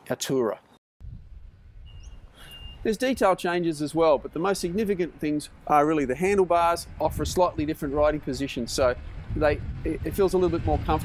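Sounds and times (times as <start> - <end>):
bird whistles and chirp: 1.8 - 2.9
man's voice: 2.9 - 11.0
low steady rumble: 3.9 - 11.0.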